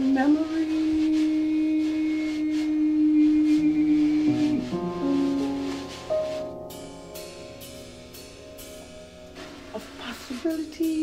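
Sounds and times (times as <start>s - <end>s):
woman singing long note: 0.0s - 4.8s
lower notes: 0.7s - 10.5s.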